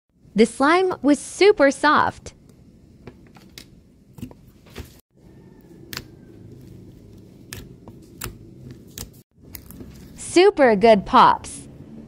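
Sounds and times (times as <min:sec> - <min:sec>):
slime being kneaded: 0:05.7 - 0:10.1.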